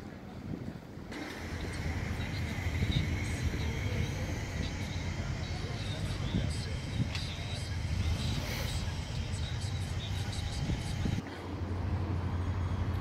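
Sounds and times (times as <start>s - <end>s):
building site rumble: 0.0s - 13.0s
faint high whine: 1.1s - 13.0s.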